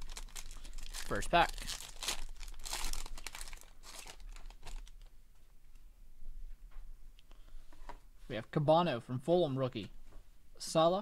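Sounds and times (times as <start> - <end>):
foil wrapper tearing and crinkling: 0.0 - 5.1.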